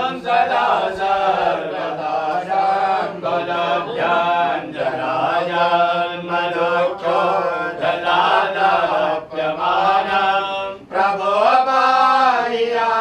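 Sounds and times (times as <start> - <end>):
devotional chanting: 0.0 - 13.0.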